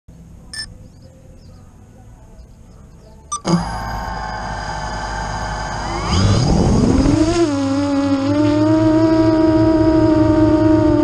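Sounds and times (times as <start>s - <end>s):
low steady rumble: 0.1s - 11.0s
short electronic beep: 3.3s - 4.4s.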